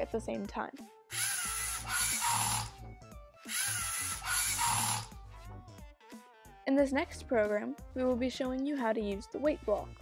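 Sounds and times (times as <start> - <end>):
soft background music: 0.0 - 10.0
robot motors whirring: 1.1 - 2.8, 3.5 - 5.2.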